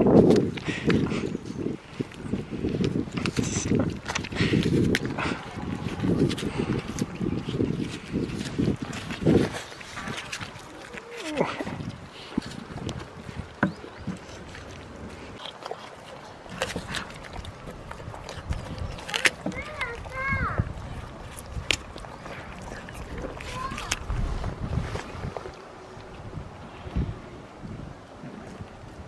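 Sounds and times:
wind buffeting microphone: 0.0 - 29.0
goats crunching apple: 0.1 - 25.6.

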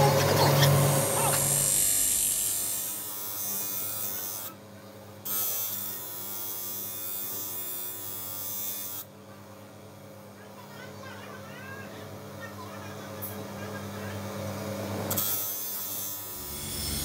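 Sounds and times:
polishing wheel electric hum: 0.0 - 4.6, 5.2 - 9.2, 12.9 - 17.0.

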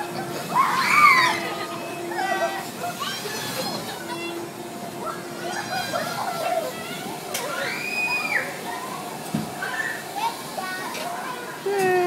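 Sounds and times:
children chattering and calling: 0.0 - 12.0.

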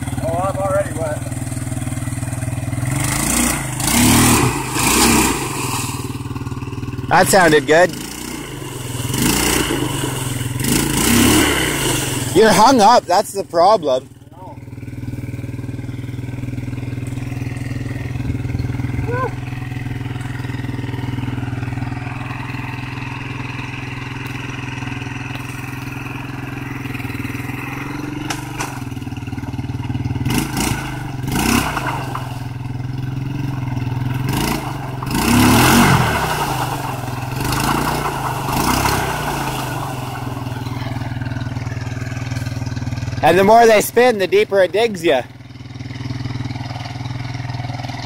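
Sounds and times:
quad engine revving: 0.0 - 48.0.

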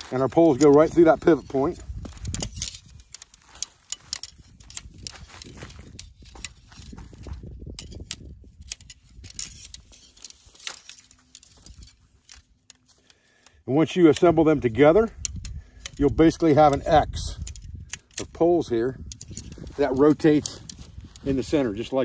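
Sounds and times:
tent pole sections clicking: 0.0 - 22.0.

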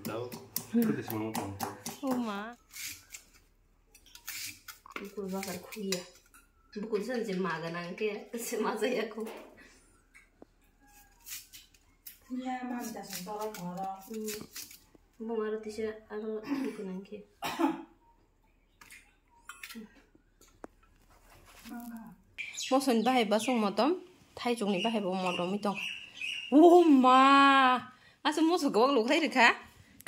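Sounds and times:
knife slicing vegetable: 0.8 - 3.4, 4.1 - 6.0, 10.9 - 14.8
woman speaking: 2.0 - 2.6, 5.0 - 6.1, 6.8 - 9.4, 12.3 - 14.5, 21.7 - 25.9, 26.5 - 29.6
cough: 17.4 - 18.0.

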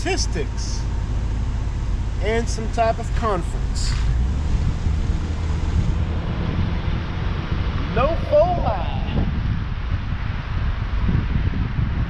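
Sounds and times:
car road noise rumble: 0.0 - 12.0
wind buffeting microphone: 0.0 - 12.0.

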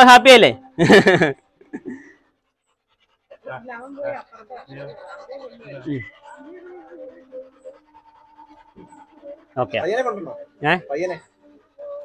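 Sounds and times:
dog panting: 0.8 - 12.0.

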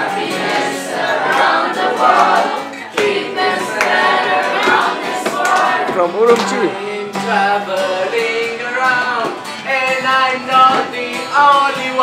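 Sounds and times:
song with singing voices: 0.0 - 12.0.

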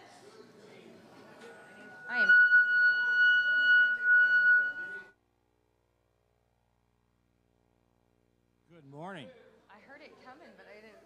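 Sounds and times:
voices: 0.9 - 5.1
high-pitched feedback whistle: 1.4 - 5.1.

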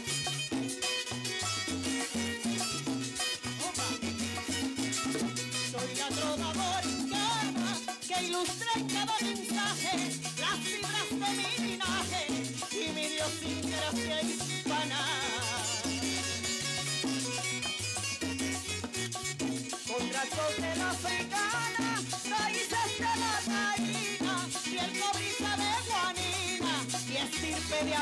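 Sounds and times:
hand percussion: 0.0 - 28.0.

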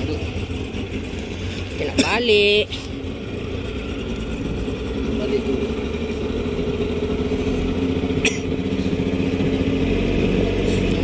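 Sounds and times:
small boat motor running: 0.0 - 11.0.

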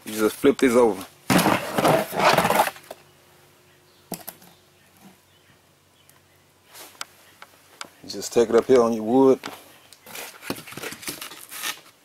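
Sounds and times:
board scraping on plastic: 1.3 - 2.9.

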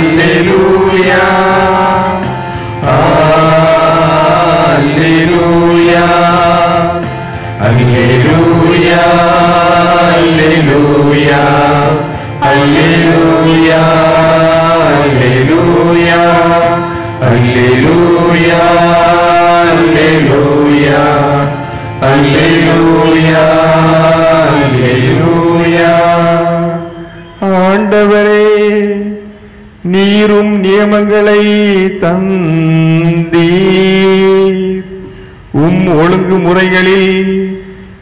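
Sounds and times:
priest chanting into a microphone: 0.0 - 37.8.

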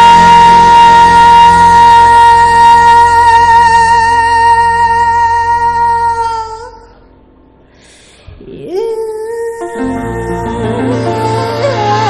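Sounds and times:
woman singing a long note: 0.0 - 6.9, 8.5 - 12.0.

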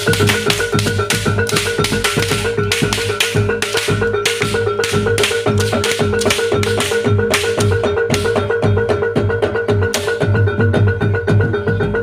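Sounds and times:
bright clashing strokes: 0.0 - 8.4
drum strokes: 0.0 - 8.9
metal mallet notes: 0.0 - 9.0.

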